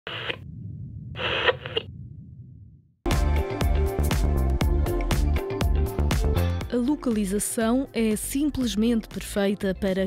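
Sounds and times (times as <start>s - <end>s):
low hum: 0.1s - 3.0s.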